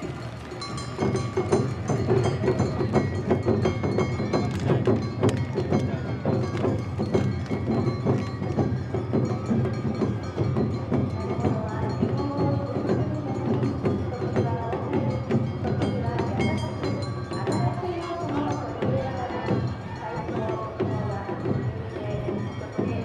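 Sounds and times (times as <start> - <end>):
taiko drums beating: 0.0 - 23.0.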